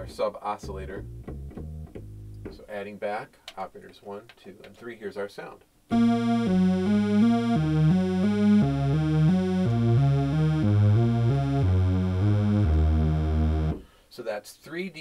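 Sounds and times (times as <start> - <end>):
synthesizer saw notes: 5.9 - 13.8.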